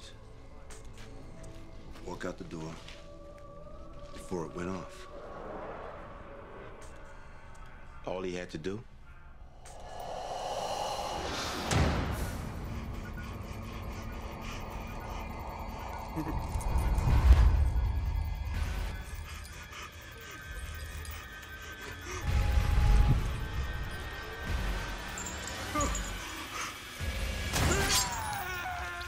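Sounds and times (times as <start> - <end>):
dark droning horror score: 0.0 - 29.0.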